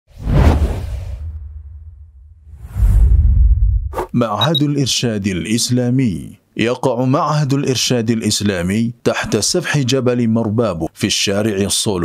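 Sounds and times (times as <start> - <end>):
whoosh with deep rumble: 0.1 - 4.1.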